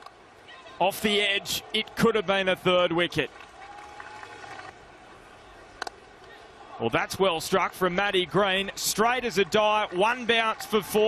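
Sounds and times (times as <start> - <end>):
faint open-air ambience: 0.0 - 11.0.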